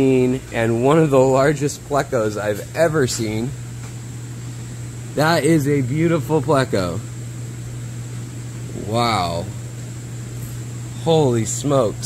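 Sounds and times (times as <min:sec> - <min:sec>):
low mechanical hum: 0:00.0 - 0:12.0
high-pitched whine: 0:08.7 - 0:09.7.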